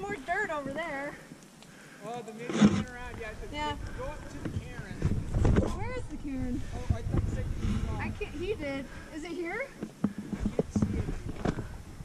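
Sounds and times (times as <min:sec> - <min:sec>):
people talking indistinctly: 0:00.0 - 0:11.8
wind buffeting microphone: 0:02.8 - 0:12.0.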